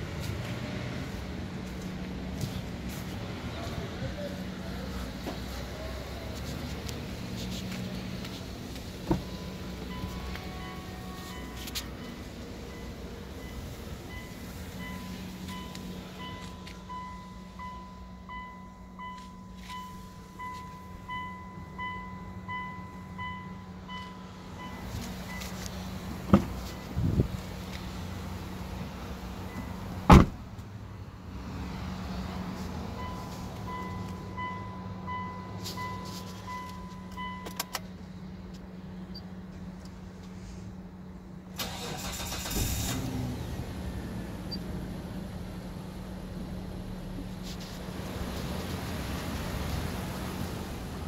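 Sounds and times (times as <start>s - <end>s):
car engine idling: 0.0s - 31.6s, 32.2s - 51.0s
dashboard warning chime beeping: 9.0s - 25.8s, 26.6s - 27.0s, 29.4s - 29.9s, 33.0s - 37.9s
engine starter cranking: 41.6s - 43.3s.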